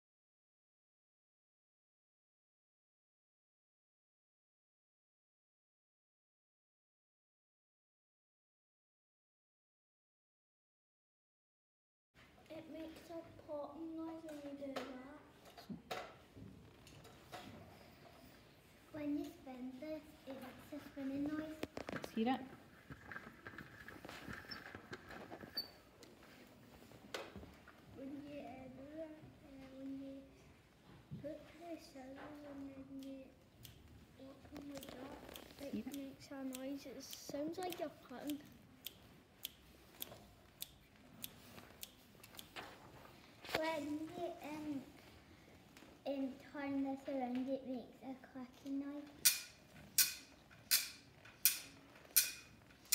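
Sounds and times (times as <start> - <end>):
child speaking: 12.5 - 15.8, 18.9 - 22.3, 27.9 - 30.5, 31.2 - 33.4, 34.2 - 38.6, 43.5 - 45.1, 46.0 - 49.2.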